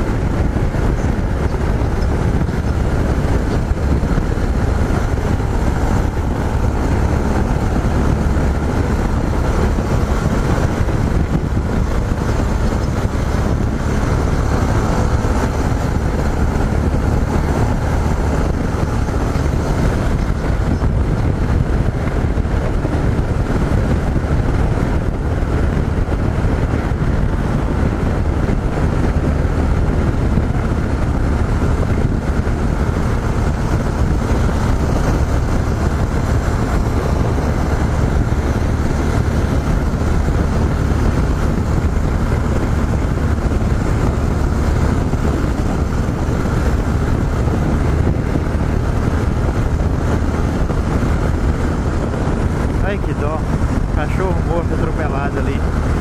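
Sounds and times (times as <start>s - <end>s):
motorcycle engine cruising: 0.0s - 56.0s
wind rushing over microphone: 0.0s - 56.0s.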